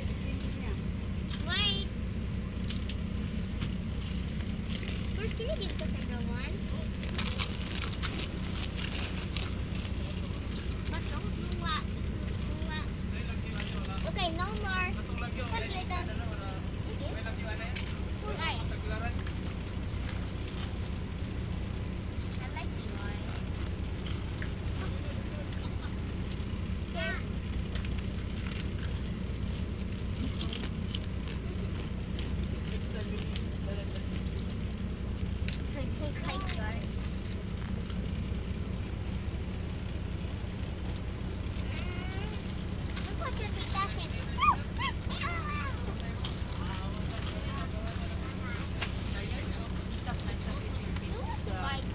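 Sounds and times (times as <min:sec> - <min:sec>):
bus engine droning: 0:00.0 - 0:51.9
faint passenger voices: 0:00.0 - 0:51.9.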